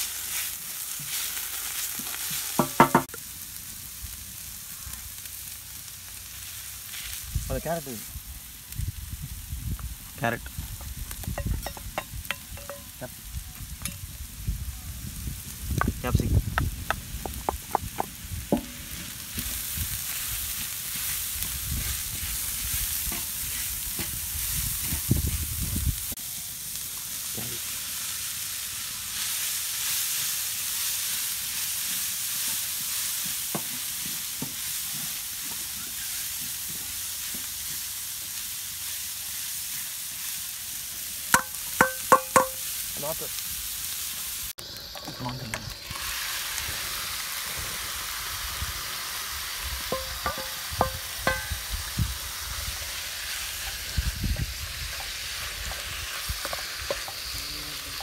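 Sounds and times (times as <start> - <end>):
vegetables sizzling in oil: 0.0 - 58.0.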